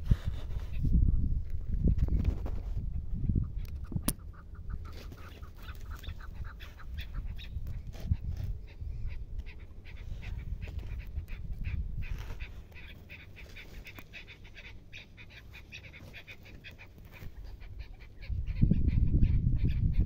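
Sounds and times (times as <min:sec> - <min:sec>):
wind on microphone: 0:00.0 - 0:14.7, 0:16.0 - 0:20.0
partridges calling: 0:03.3 - 0:20.0.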